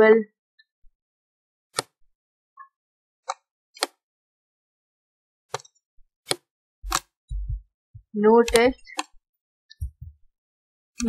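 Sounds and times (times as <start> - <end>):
computer mouse clicks: 1.8 - 2.0, 3.3 - 4.0, 6.3 - 7.1, 8.4 - 9.2.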